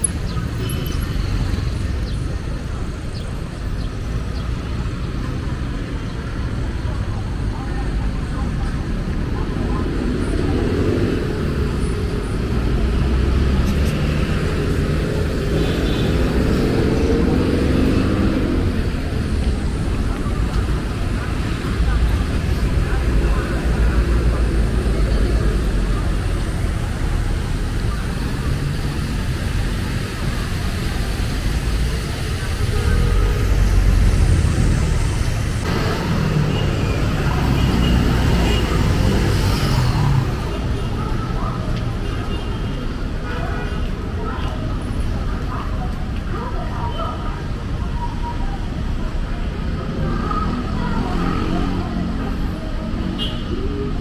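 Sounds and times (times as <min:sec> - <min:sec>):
cars and motorcycles passing: 0:00.0 - 0:54.0.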